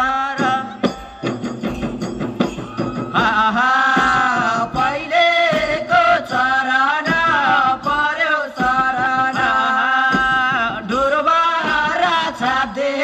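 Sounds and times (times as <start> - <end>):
person singing long held line: 0.0 - 1.0, 2.6 - 13.0
drum strokes: 0.0 - 13.0
group of voices singing: 2.6 - 13.0.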